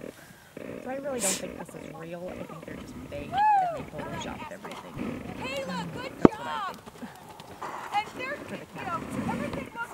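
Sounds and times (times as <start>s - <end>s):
horse hoofbeats on soft ground: 0.0s - 9.9s
people talking: 0.8s - 7.1s, 7.9s - 9.9s.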